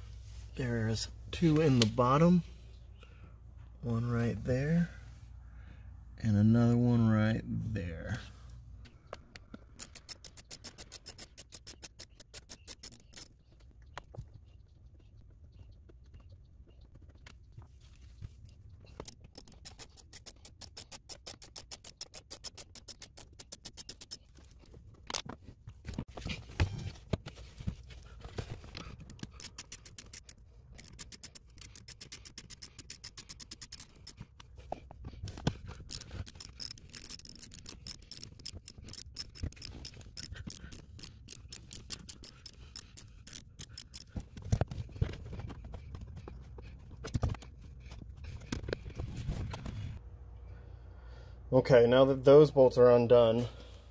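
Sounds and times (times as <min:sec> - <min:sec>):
socket ratchet clicking: 0:09.8 - 0:13.3, 0:19.0 - 0:24.2, 0:29.0 - 0:34.2, 0:35.7 - 0:44.1.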